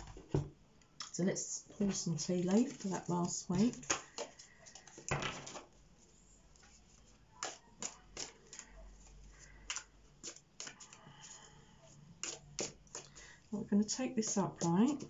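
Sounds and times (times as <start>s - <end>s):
cards being shuffled: 1.9s - 5.8s, 6.6s - 11.6s, 12.2s - 13.3s.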